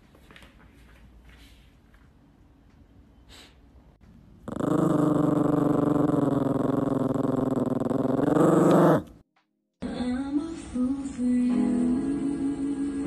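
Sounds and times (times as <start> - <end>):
dog growling: 4.4 - 9.1.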